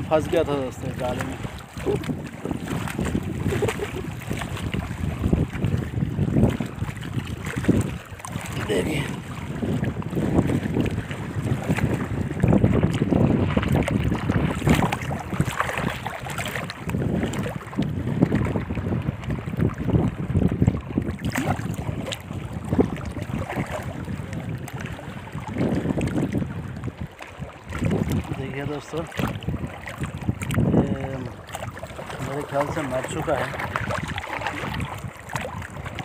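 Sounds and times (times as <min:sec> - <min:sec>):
water sloshing over stones: 0:00.0 - 0:05.7, 0:06.4 - 0:18.7, 0:21.0 - 0:36.0
wind buffeting microphone: 0:00.0 - 0:36.0.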